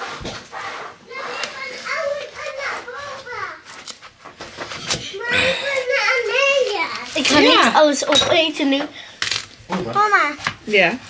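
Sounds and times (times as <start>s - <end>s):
young child talking: 1.1s - 3.7s, 5.1s - 8.9s, 10.0s - 10.4s.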